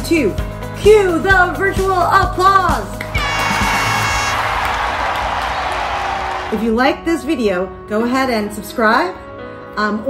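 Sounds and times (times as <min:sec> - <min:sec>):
background music: 0:00.0 - 0:10.0
clapping: 0:03.0 - 0:06.6
crowd cheering: 0:03.1 - 0:06.8.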